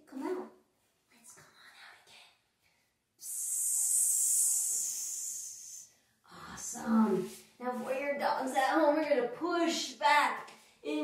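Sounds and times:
woman hissing like a snake: 3.2s - 5.8s.

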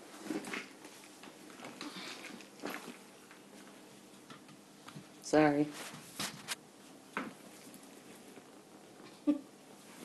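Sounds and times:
clothing and handbag rustling: 0.0s - 3.9s.

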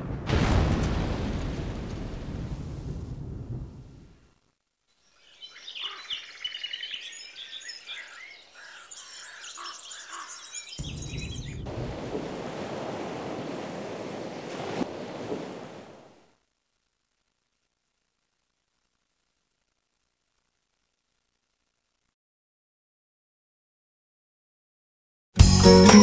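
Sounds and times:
birds chirping: 5.0s - 11.7s.

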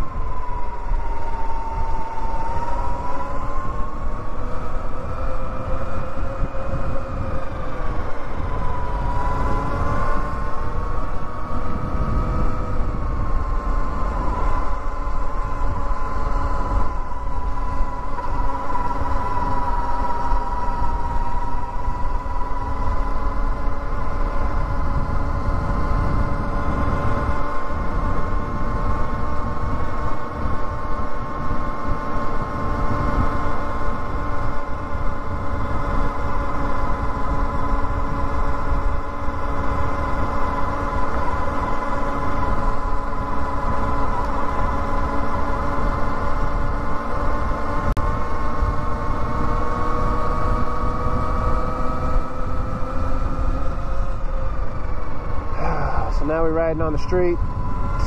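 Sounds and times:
electric motorbike motor whining: 0.0s - 58.0s
wind rumble on microphone: 0.0s - 58.0s.

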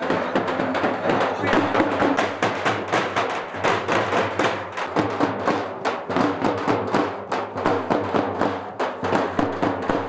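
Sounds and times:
drums beating quick rhythm: 0.0s - 10.0s.

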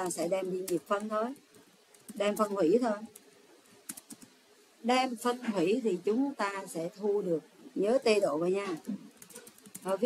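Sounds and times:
woman speaking: 0.0s - 1.5s, 2.1s - 3.2s, 4.8s - 9.2s, 9.8s - 10.0s.

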